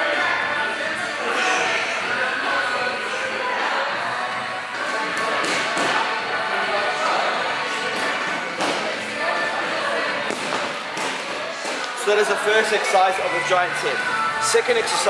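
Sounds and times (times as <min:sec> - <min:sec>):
people talking: 0:00.0 - 0:10.7, 0:11.4 - 0:15.0
background music: 0:00.0 - 0:15.0.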